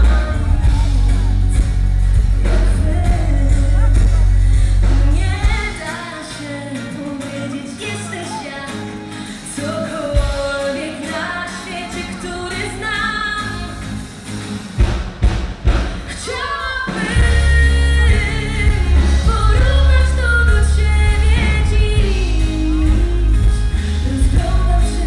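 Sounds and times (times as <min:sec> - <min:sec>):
woman singing: 0:00.0 - 0:14.0, 0:16.0 - 0:25.0
full band with heavy bass: 0:00.0 - 0:25.0.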